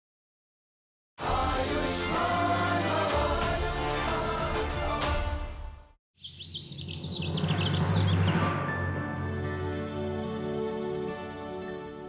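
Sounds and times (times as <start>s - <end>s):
choral theme music: 1.2s - 6.0s, 7.5s - 12.0s
birds chirping: 6.2s - 9.1s.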